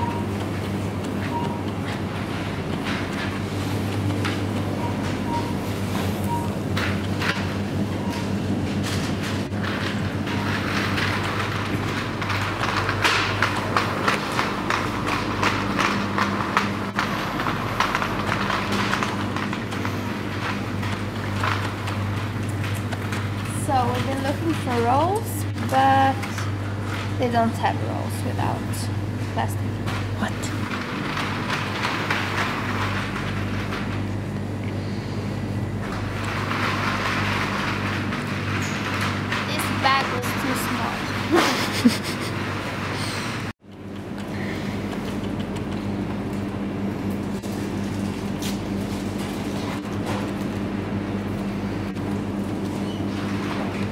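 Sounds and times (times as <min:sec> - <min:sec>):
steady low hum: 0:00.0 - 0:53.9.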